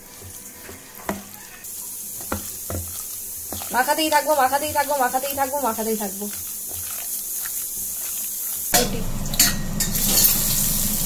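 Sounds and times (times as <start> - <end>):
hand squishing batter: 0.9 - 8.7.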